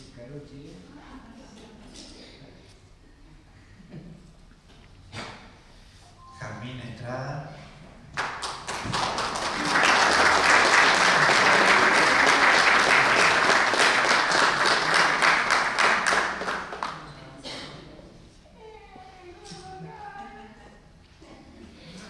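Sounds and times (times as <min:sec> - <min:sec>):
audience applauding: 0:08.2 - 0:17.1.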